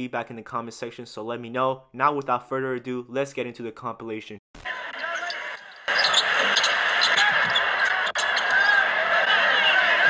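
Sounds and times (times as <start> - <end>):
arena crowd noise: 4.6 - 10.0.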